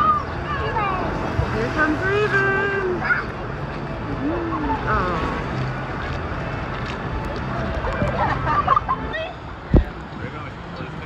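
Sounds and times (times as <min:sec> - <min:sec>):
water rushing and splashing: 0:00.0 - 0:11.0
wind on microphone: 0:09.6 - 0:10.0.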